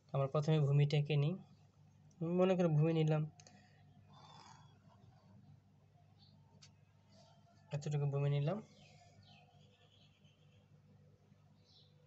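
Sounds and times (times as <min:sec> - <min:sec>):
person speaking: 0:07.7 - 0:08.8.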